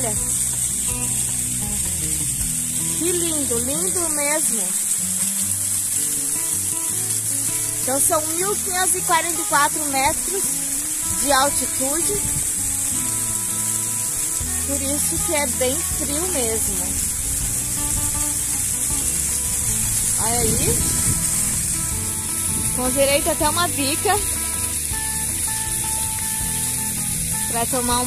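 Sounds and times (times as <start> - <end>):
background music: 0.0 - 28.0
waterfall splashing on rock: 0.0 - 28.0.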